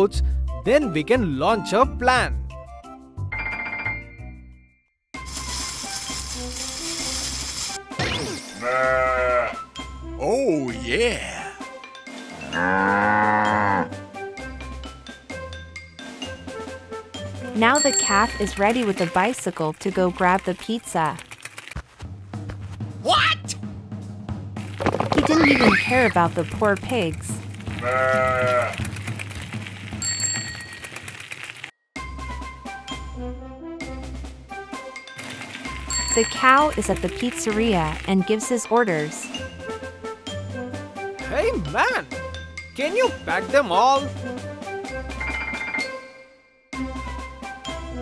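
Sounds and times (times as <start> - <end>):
cartoon background music: 0.0 - 4.6, 5.2 - 21.4, 22.8 - 29.4, 32.0 - 48.0
bicycle bell ringing: 17.7 - 18.7, 30.0 - 31.3, 35.9 - 36.8
held animal call: 27.8 - 28.9.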